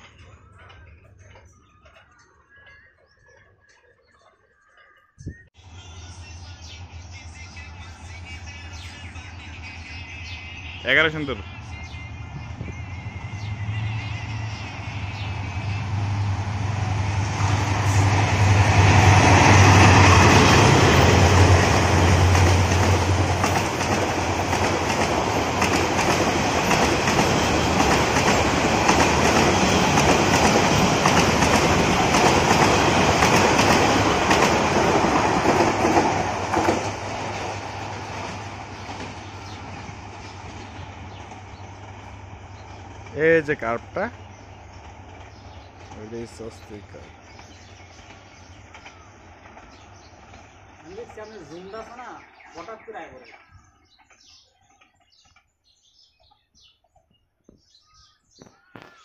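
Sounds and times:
diesel locomotive engine drone: 5.6 - 52.8
train wheels rattling on track: 10.1 - 55.2.

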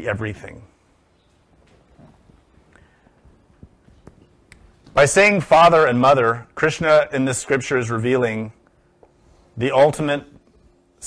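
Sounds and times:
man speaking: 0.0 - 0.8, 4.9 - 8.6, 9.6 - 10.4.

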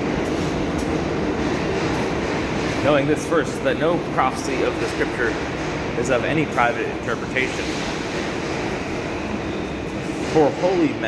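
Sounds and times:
subway train running: 0.0 - 11.0
people talking: 2.8 - 5.4, 6.0 - 7.8, 10.2 - 11.0.

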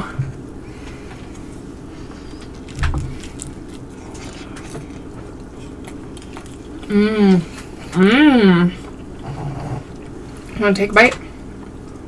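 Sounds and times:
steady low hum: 0.0 - 12.0
close-miked chewing: 0.8 - 10.6.

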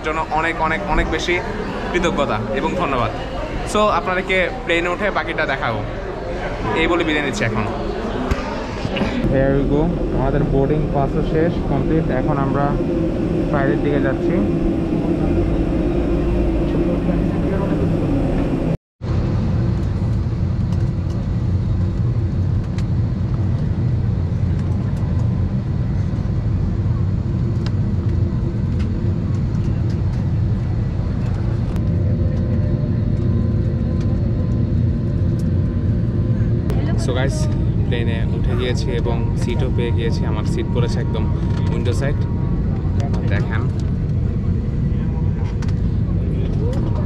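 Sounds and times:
faint passenger chatter: 0.0 - 18.8, 23.9 - 47.0
air conditioning: 0.0 - 47.0
aircraft cabin rumble: 6.6 - 47.0.

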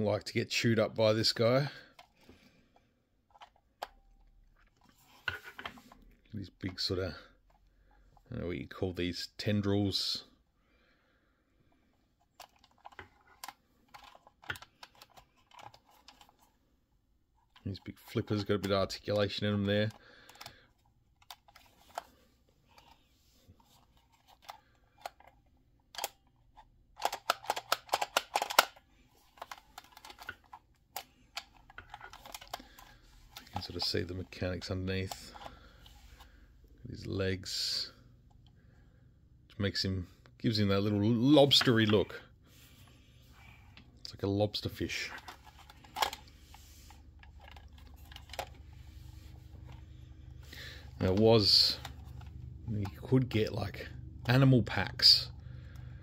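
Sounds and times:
low steady hum: 0.2 - 56.0
plastic clicks: 12.2 - 16.5, 17.4 - 23.0, 23.6 - 36.4, 44.7 - 46.4, 47.2 - 48.6
plastic figure rattling: 12.3 - 16.5, 23.6 - 34.3, 44.8 - 46.3, 47.2 - 48.6
plastic toy figure clicking: 27.0 - 28.8.

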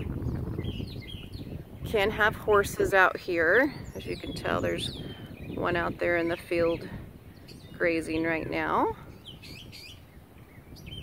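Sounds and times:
faint bird chirps: 6.6 - 11.0.

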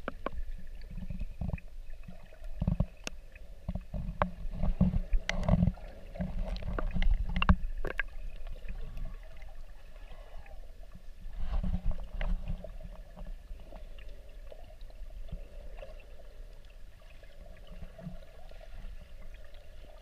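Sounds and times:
muffled underwater rumble: 0.0 - 20.0.

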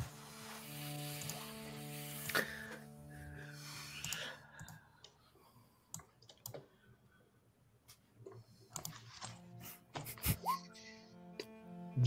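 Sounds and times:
soft background music: 0.0 - 5.2, 8.4 - 12.0
computer mouse and keyboard clicks: 5.9 - 6.7, 8.2 - 9.4.

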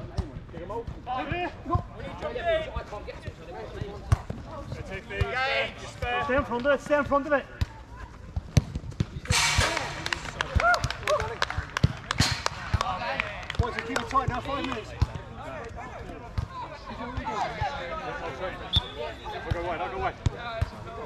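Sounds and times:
football kicked and bouncing: 6.0 - 9.2.

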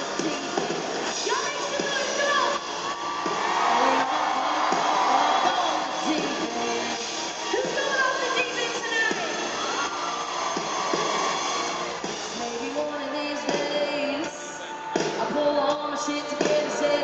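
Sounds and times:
woman singing: 0.0 - 2.6, 3.6 - 9.2, 12.4 - 17.0
live band playing country-pop: 0.0 - 17.0.

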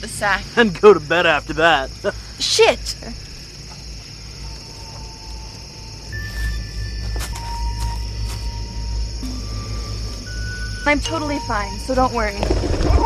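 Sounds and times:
crickets chirring: 0.0 - 13.0
film music of long held notes: 4.2 - 13.0.

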